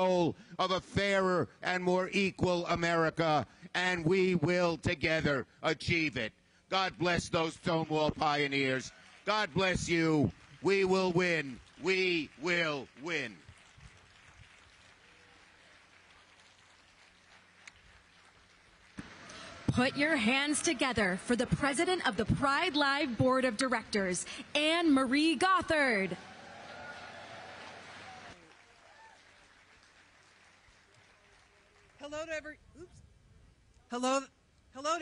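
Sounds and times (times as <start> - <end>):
distant crowd applause: 7.6 - 32.1.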